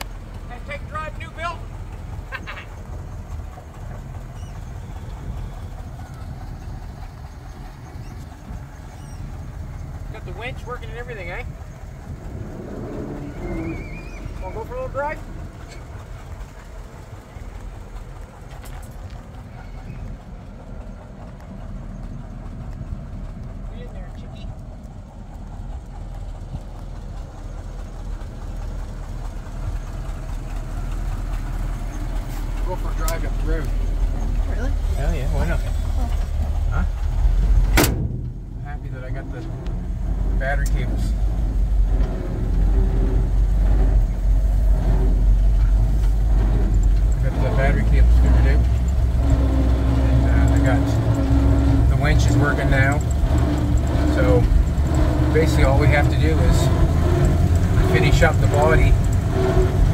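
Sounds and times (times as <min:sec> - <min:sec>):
truck engine low rumble: 0:00.0 - 0:59.9
high wavering squeak: 0:13.1 - 0:14.6
sharp loud clunk: 0:37.7 - 0:38.5.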